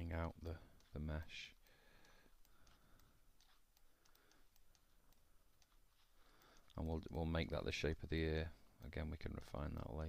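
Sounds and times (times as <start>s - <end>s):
faint computer mouse clicks: 1.6s - 7.3s.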